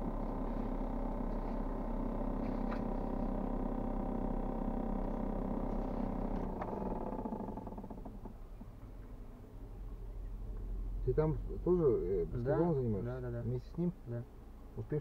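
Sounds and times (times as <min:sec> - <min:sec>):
mechanical hum in car cabin: 0:00.0 - 0:15.0.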